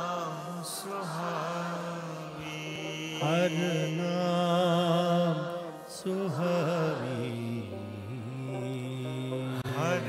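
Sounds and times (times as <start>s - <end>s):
man singing with vibrato: 0.0s - 10.0s.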